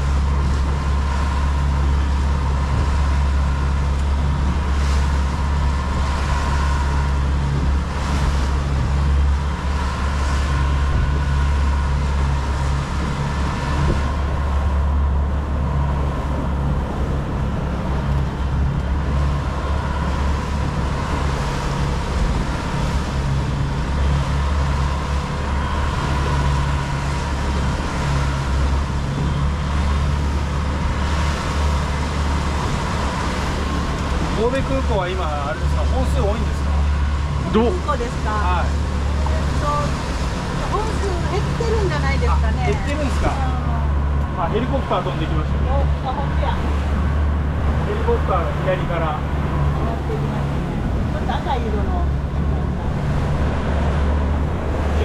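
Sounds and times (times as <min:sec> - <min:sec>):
outboard motor running: 0:00.0 - 0:55.0
rush of wind and wake: 0:00.0 - 0:55.0.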